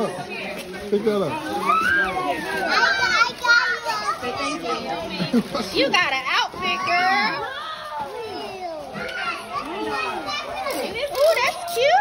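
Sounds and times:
children chattering and calling out: 0.0 - 12.0
people talking: 0.0 - 12.0.

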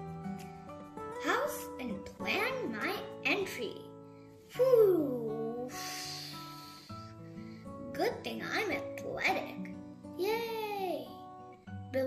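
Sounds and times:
gentle background music: 0.0 - 12.0.

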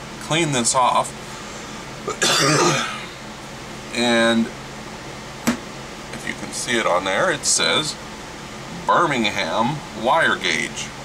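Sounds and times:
man coughing: 2.0 - 3.2.

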